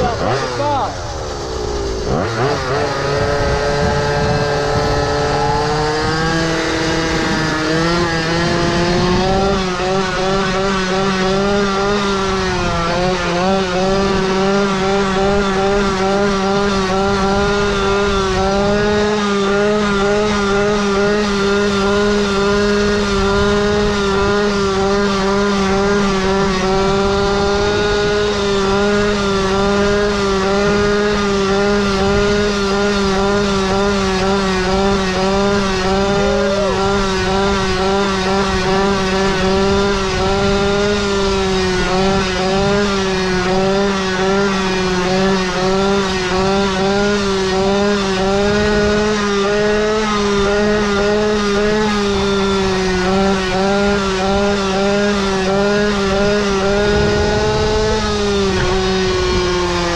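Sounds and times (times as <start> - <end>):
scooter engine revving: 0.0 - 59.9.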